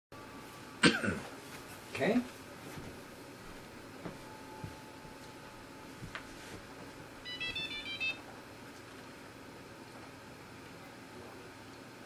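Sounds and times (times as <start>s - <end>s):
short electronic beeps: 7.2s - 8.2s.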